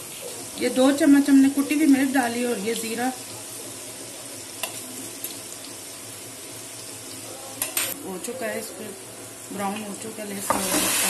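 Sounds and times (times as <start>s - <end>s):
chillies sizzling in hot oil: 0.0s - 11.0s.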